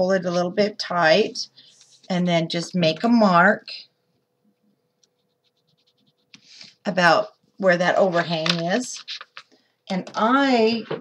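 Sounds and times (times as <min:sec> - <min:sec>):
pencil scratching on cardstock: 0:05.1 - 0:06.8.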